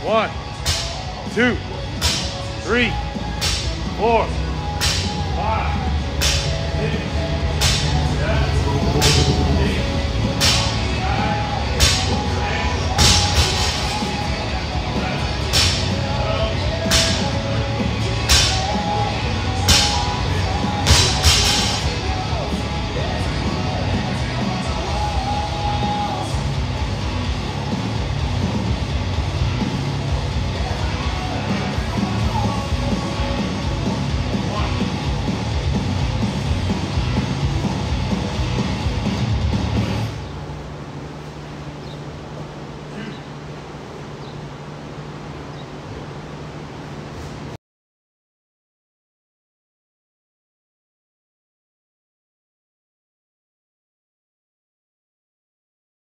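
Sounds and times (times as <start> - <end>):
rock music: 0.0 - 40.1.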